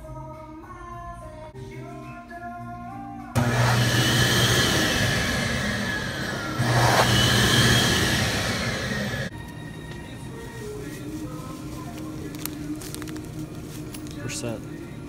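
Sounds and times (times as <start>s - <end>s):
electric hand dryer blowing: 3.4s - 9.3s.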